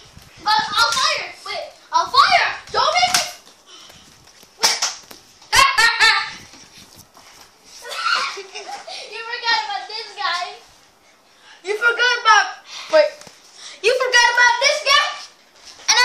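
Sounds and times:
children shouting: 7.8s - 8.5s.

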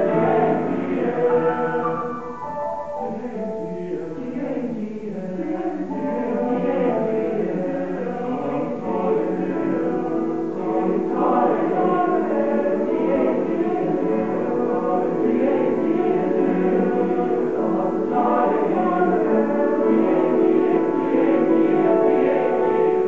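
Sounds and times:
male choir singing in harmony: 0.0s - 23.0s.

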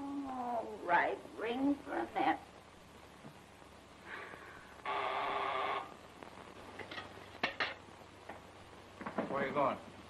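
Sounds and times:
electric buzzer: 4.8s - 6.0s.

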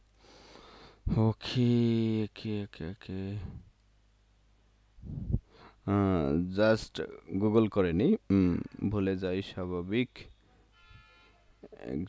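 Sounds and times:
man saying a word: 1.1s - 3.6s.

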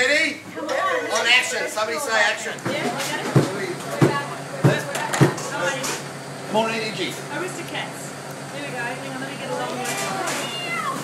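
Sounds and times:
low voices: 0.0s - 11.0s.

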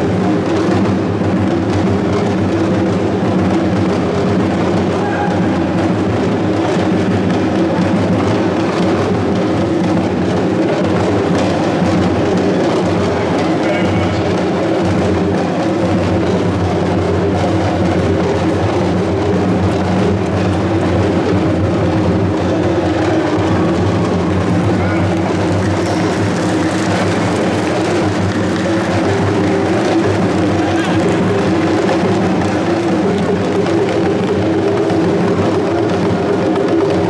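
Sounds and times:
barrel drums playing rhythm: 0.0s - 37.0s.

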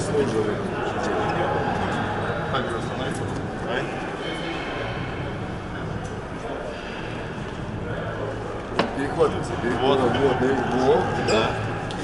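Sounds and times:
low rumble of hall: 0.0s - 12.0s.

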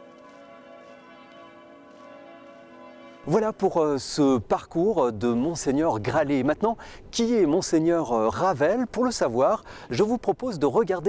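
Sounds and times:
sustained bell-like chord: 0.0s - 4.2s.

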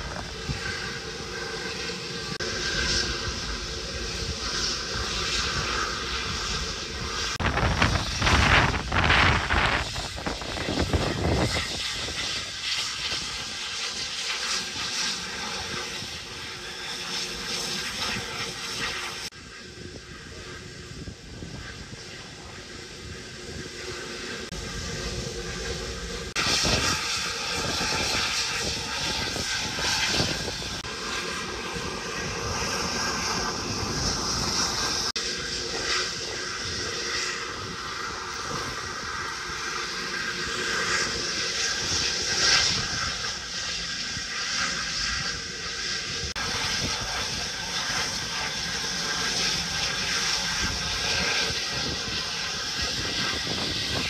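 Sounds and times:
industrial machinery roar: 0.0s - 54.0s.

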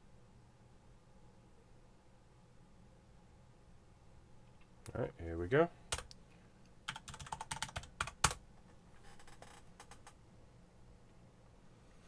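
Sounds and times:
computer keyboard typing: 5.9s - 6.2s, 6.8s - 8.4s.

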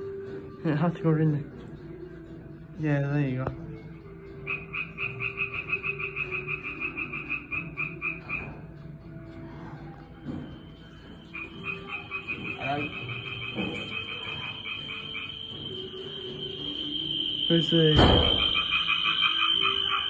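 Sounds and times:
frog calling in rapid pulses: 4.4s - 8.6s, 11.3s - 15.8s, 16.4s - 20.0s.

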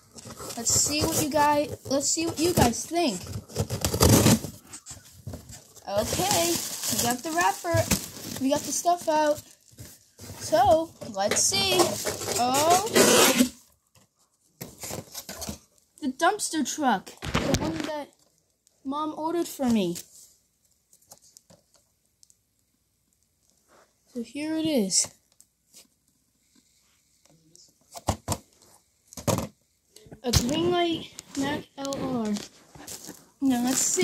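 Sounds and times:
plastic packaging handling noise: 0.0s - 15.8s, 30.2s - 34.0s
cardboard rubbing and scraping: 0.1s - 9.4s, 11.6s - 13.6s.

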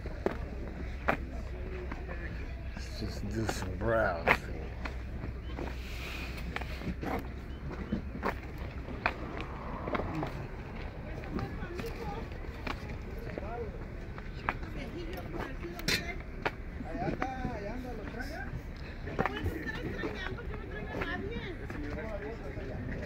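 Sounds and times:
people talking: 0.0s - 7.2s, 10.0s - 23.0s
low steady rumble: 0.0s - 23.0s.

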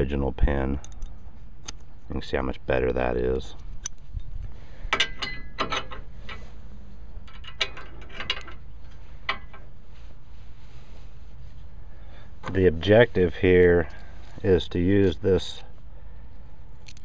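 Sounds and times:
steady low rumble: 0.0s - 17.0s
metal pin clicks and clinks: 0.8s - 1.8s, 16.8s - 17.0s.

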